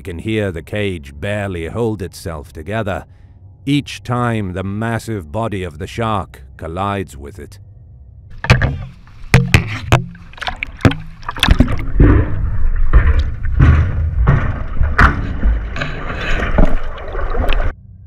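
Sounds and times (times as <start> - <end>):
churning sloshing water: 8.4 - 17.8
knocks and clanks of metal cage: 11.9 - 16.0.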